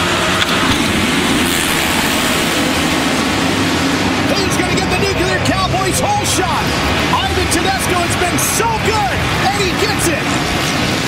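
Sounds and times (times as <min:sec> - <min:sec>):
motorcycles revving and accelerating: 0:00.0 - 0:11.0.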